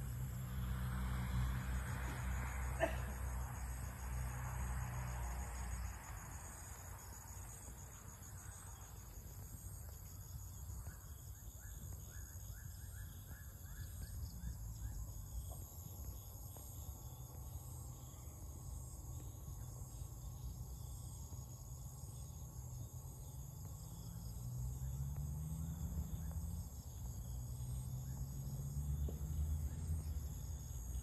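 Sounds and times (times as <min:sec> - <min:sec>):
insects chirping chorus: 0:00.0 - 0:31.0.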